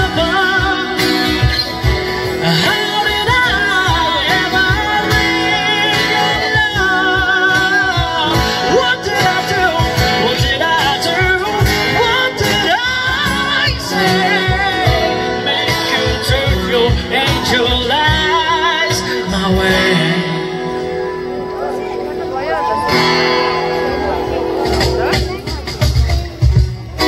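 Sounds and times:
steady drum beat: 0.0s - 20.2s, 23.0s - 27.0s
person singing: 0.0s - 21.1s
acoustic guitars: 0.0s - 27.0s.

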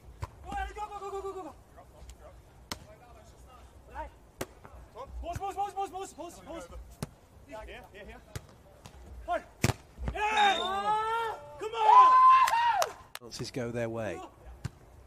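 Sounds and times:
people shouting calls: 5.1s - 6.6s, 10.1s - 13.1s
volleyball hits: 9.6s - 10.4s.

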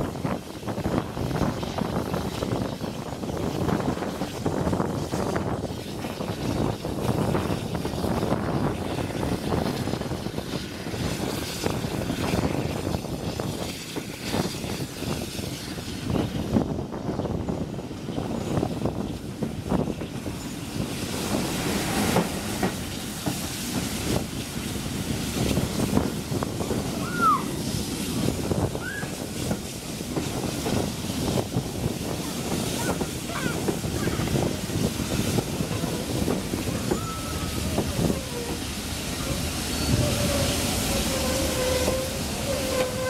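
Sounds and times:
rush of wind: 0.0s - 43.0s
train wheels clacking over rail joints: 18.0s - 26.8s, 37.6s - 43.0s.

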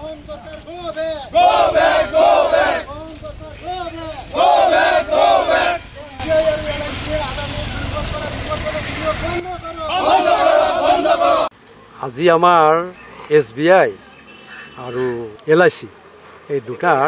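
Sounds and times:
crowd shouting slogans: 1.2s - 2.9s, 3.6s - 6.8s, 9.8s - 11.5s
group chanting: 1.3s - 2.9s, 4.3s - 5.8s, 9.9s - 11.5s.

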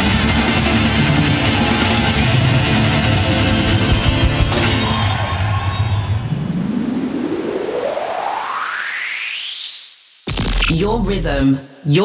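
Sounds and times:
white-noise riser sweeping upward: 6.0s - 10.7s.

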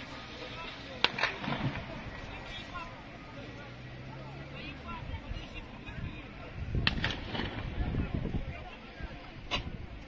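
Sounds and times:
distant voices: 0.0s - 10.0s
gunshot crack: 6.8s - 7.9s.

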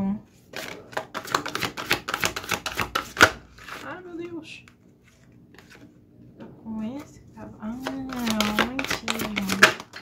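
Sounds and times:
cards being shuffled: 0.5s - 5.9s, 7.8s - 10.0s.

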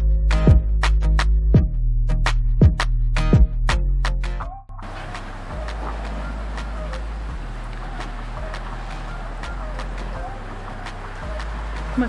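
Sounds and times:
faint distant voices: 4.8s - 12.0s.

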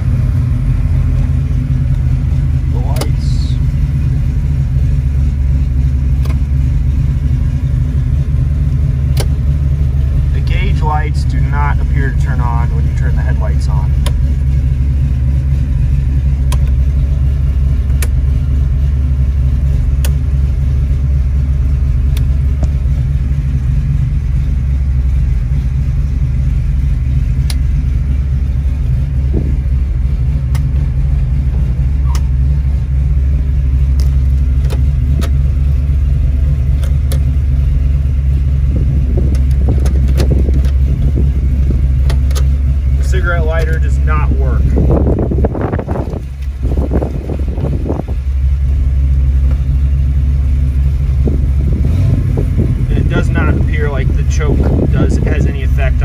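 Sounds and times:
engine idling from inside car: 0.0s - 56.0s.

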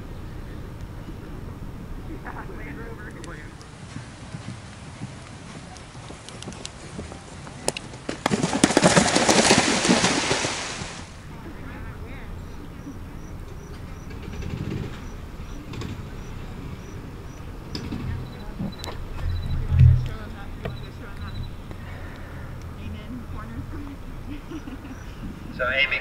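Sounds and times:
horse splashing through water: 3.8s - 11.2s
low thud: 17.8s - 21.6s.

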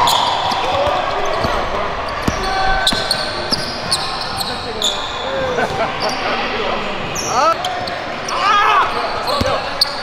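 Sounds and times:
voices in gym: 0.0s - 10.0s.

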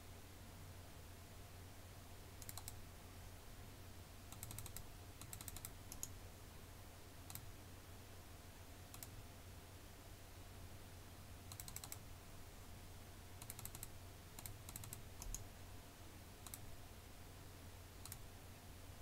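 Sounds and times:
low steady hum: 0.0s - 19.0s
computer keyboard keystrokes: 2.4s - 2.8s, 4.3s - 6.2s, 8.9s - 9.2s, 11.5s - 12.0s, 13.4s - 15.4s, 16.4s - 16.7s, 18.0s - 18.2s.

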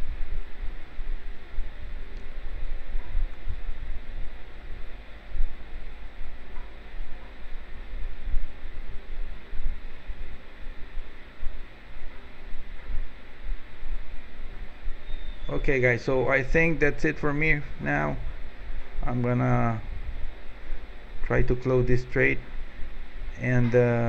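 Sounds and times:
low uneven rumble: 0.0s - 24.0s.

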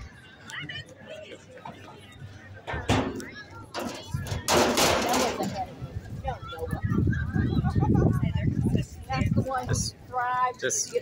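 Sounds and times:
voices: 0.0s - 11.0s
sharp bangs: 3.8s - 5.6s.

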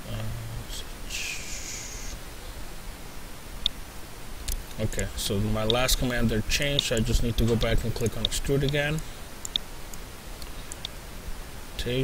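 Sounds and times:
microphone hiss: 0.0s - 12.0s
soft higher hiss: 0.0s - 12.0s.

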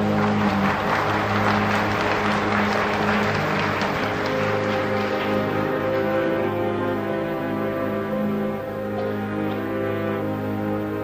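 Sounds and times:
audience applause: 0.0s - 10.3s
orchestra holding chords: 0.0s - 11.0s.

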